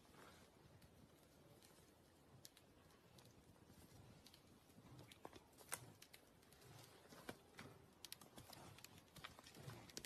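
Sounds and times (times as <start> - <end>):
twigs snapping: 4.2 - 10.0.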